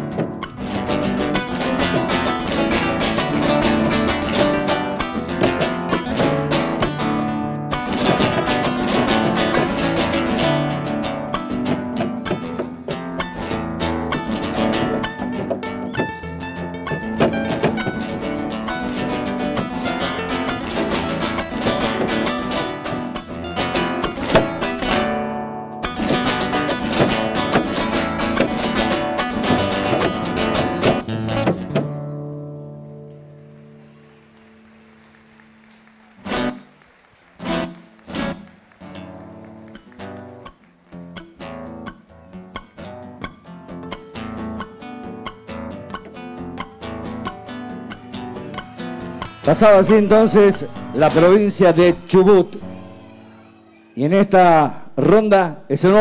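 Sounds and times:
dancer's foot stomps: 0.0s - 7.2s, 7.8s - 25.2s, 25.8s - 32.1s
acoustic guitar fast rhythm: 0.0s - 34.7s, 35.3s - 53.4s, 54.0s - 56.0s.

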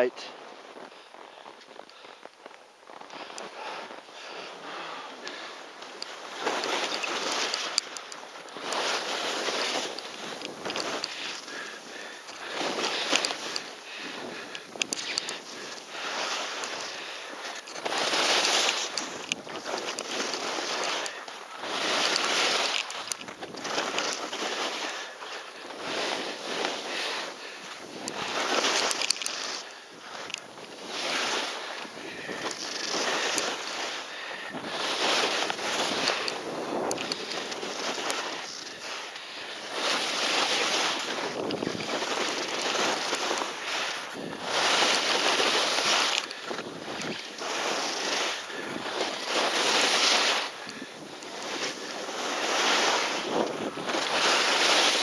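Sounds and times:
skis scraping on snow: 0.0s - 55.0s.

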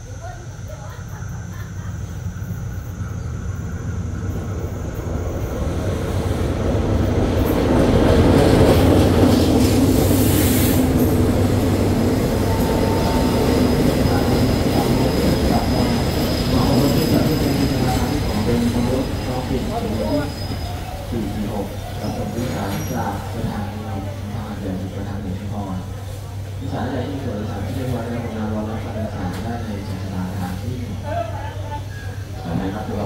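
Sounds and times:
diesel train rumble: 0.0s - 33.0s
wheel-on-rail noise: 0.0s - 33.0s
faint high squeal: 12.4s - 23.4s.

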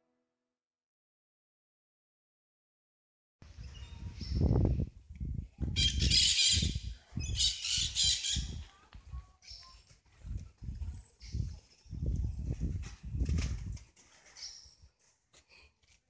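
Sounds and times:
birds squawking: 7.4s - 8.5s.

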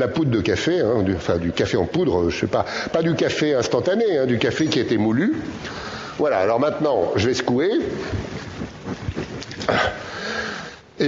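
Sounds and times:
liquid sloshing in shaken bottle: 7.8s - 9.7s.

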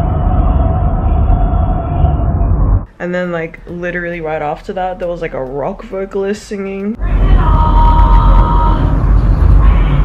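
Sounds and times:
loud low rumble: 0.0s - 2.9s, 7.0s - 10.0s
woman singing operatic note: 7.0s - 10.0s.

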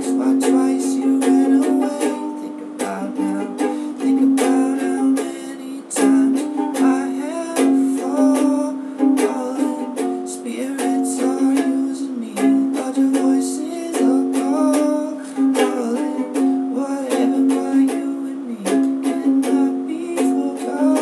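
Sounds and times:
ukulele strumming: 0.0s - 21.0s.

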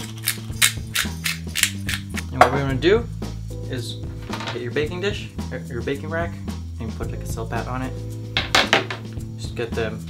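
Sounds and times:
pepper grinder crunching: 0.0s - 2.3s
background music with low notes: 0.0s - 10.0s.

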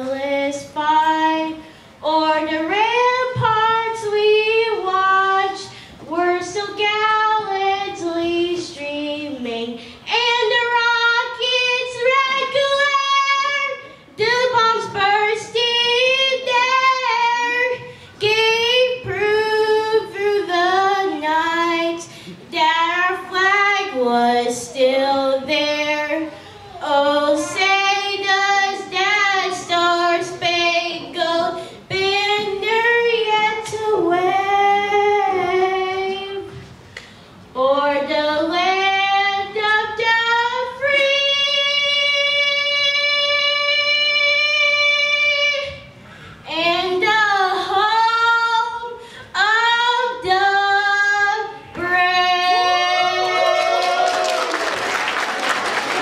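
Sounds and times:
young woman singing: 0.0s - 36.6s, 37.5s - 45.9s, 46.5s - 53.8s.

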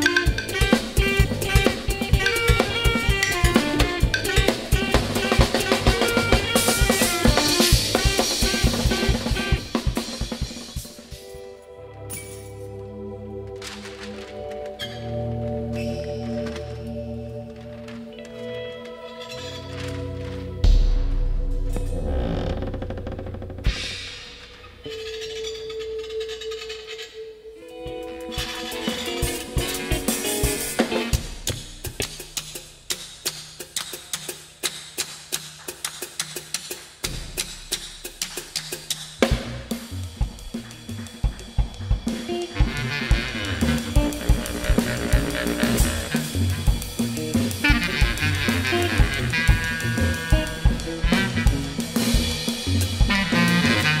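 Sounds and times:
drum kit playing: 0.0s - 12.7s, 19.7s - 25.8s, 27.6s - 54.0s
clarinet melody: 0.0s - 20.7s, 24.8s - 31.6s, 40.6s - 54.0s
electric guitar melody: 0.0s - 22.0s, 24.7s - 32.2s, 39.8s - 54.0s.

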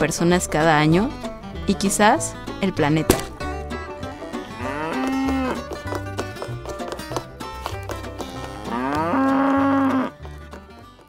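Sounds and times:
plucked-string music: 0.0s - 11.0s
cow mooing: 4.1s - 5.7s, 8.3s - 10.2s.

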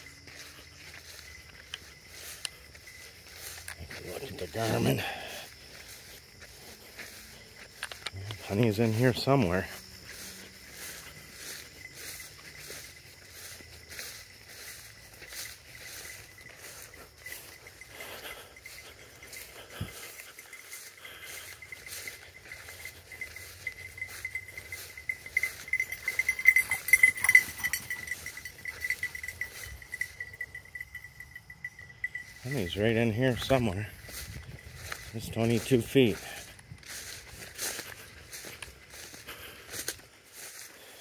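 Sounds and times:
footsteps through wet grass: 0.0s - 41.0s.

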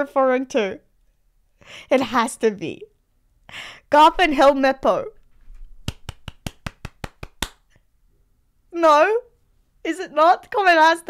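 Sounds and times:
person clapping quickly: 5.8s - 7.7s.

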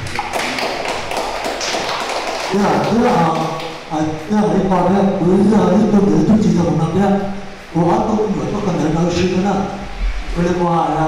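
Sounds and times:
noisy room sound: 0.0s - 11.0s
man talking over pa speaker: 2.5s - 11.0s.

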